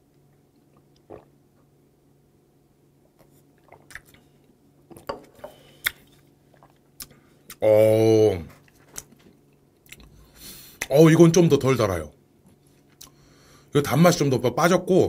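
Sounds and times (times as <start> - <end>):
man swallowing: 0.8 - 1.7
lip smacks: 3.6 - 4.2, 5.8 - 7.6.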